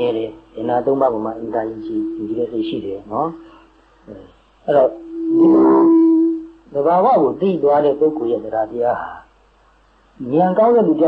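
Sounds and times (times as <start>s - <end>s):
man holding long vowel: 0.0s - 7.6s
man speaking: 0.0s - 9.3s, 10.2s - 11.0s.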